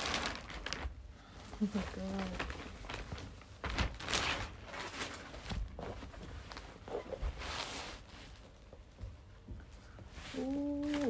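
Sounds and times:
packaging rustling: 0.0s - 8.5s.

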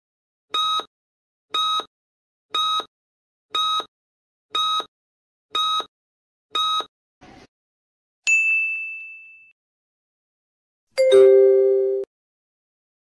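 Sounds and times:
bright ding: 8.3s - 9.5s
two-note falling chime: 11.0s - 12.1s.

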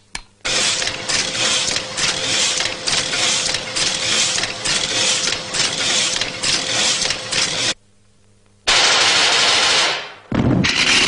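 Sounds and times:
cartoon rapid rattling burst: 8.7s - 11.0s.

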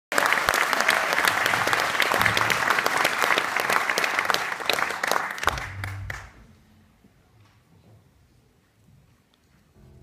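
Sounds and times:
audience applauding: 0.1s - 6.5s.

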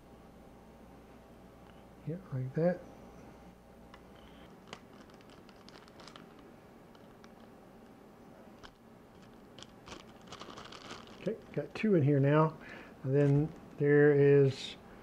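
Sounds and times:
plastic bag crinkling: 4.2s - 7.6s, 8.6s - 12.0s.

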